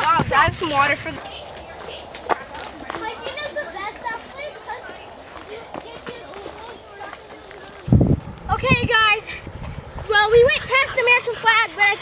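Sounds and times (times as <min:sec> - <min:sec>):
footsteps on dirt trail: 0:00.0 - 0:11.0
children calling and chattering: 0:00.0 - 0:12.0.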